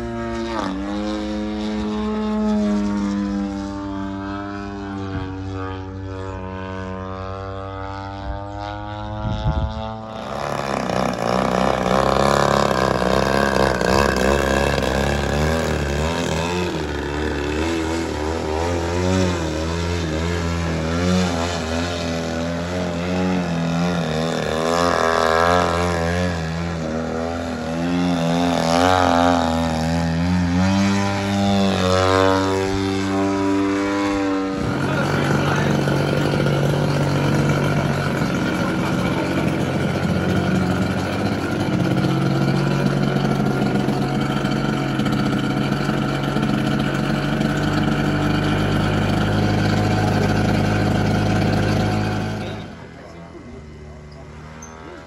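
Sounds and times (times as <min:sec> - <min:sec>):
model airplane engine: 0:00.0 - 0:55.0.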